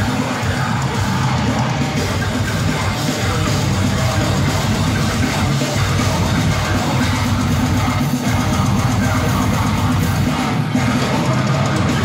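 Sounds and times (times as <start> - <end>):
heavy metal band playing live: 0.0 - 12.0.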